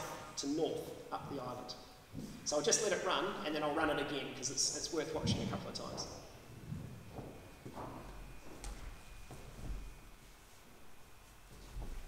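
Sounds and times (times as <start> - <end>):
faint knocks and shuffles: 2.1 - 2.5, 5.2 - 12.0.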